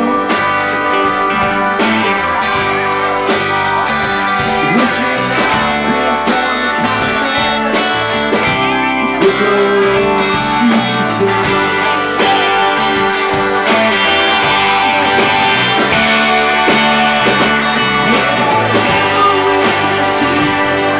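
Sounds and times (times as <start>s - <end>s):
bass: 0.0s - 20.9s
drum kit steady beat: 0.0s - 20.9s
electric guitars bending notes: 0.0s - 20.9s
keyboard: 0.0s - 20.9s.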